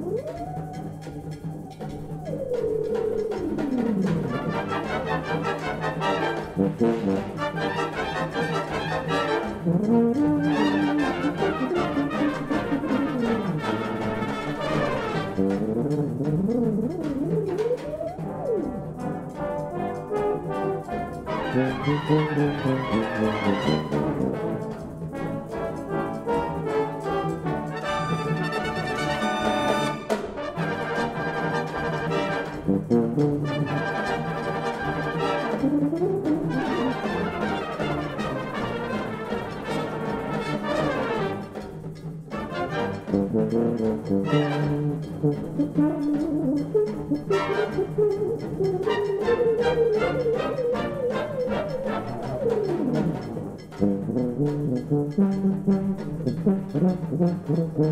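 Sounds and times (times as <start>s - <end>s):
cornets playing: 0.0s - 57.9s
solo tuba: 0.0s - 57.9s
brass band playing: 3.6s - 57.9s.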